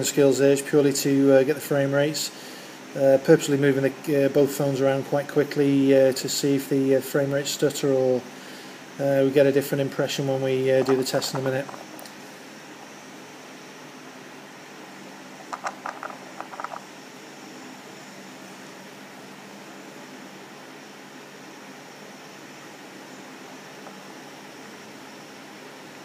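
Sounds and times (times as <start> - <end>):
room hum and hiss: 0.0 - 26.0.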